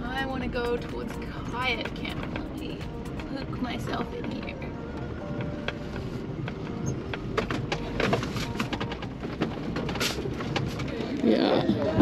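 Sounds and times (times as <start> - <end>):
engine rumble: 0.0 - 12.0.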